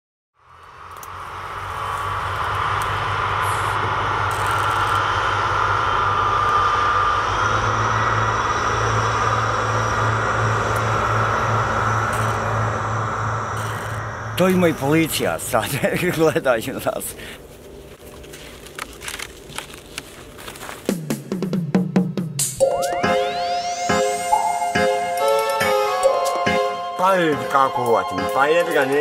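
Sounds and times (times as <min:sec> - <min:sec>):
low hum: 0:00.4 - 0:20.9
outdoor rumble and hiss: 0:00.4 - 0:21.4.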